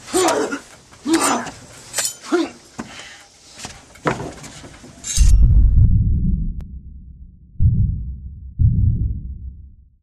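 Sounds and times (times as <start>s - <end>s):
deep low thuds: 5.2s - 9.9s.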